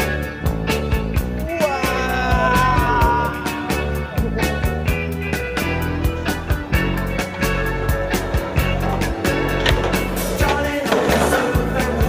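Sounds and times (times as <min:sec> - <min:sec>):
music with drum beat: 0:00.0 - 0:12.0
skateboard rolling on concrete: 0:04.4 - 0:12.0
skateboard clacks: 0:08.2 - 0:12.0.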